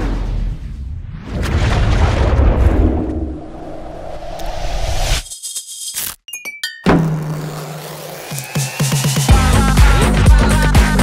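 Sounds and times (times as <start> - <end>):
underwater rumble and churn: 0.0 - 4.3
stuttering glitch transition: 4.0 - 6.2
music: 6.8 - 11.0.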